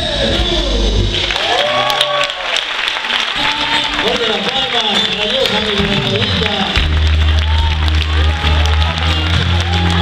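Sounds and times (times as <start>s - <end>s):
live band music: 0.0s - 1.4s, 3.3s - 10.0s
audience applauding: 1.2s - 10.0s.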